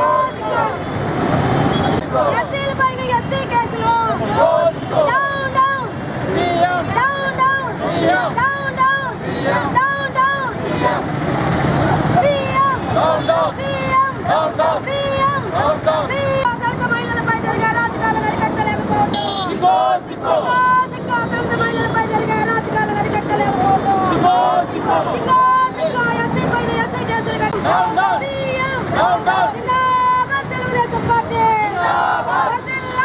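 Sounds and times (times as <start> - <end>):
protesters shouting a slogan: 0.0 - 1.3, 1.9 - 33.0
crowd noise: 0.0 - 33.0
street traffic: 0.0 - 33.0.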